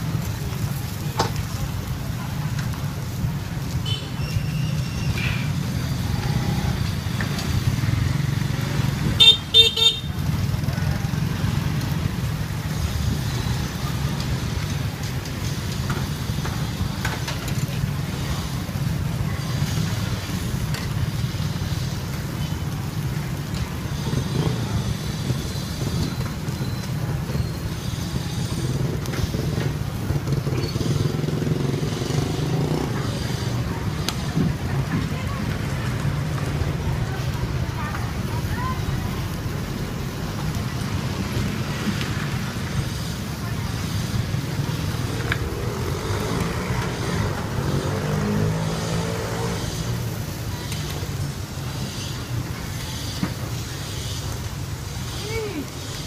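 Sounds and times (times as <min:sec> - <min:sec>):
faint voices: 0:00.0 - 0:56.0
low rumble of passing traffic: 0:00.0 - 0:56.0
vehicle horn tooting: 0:09.2 - 0:10.1.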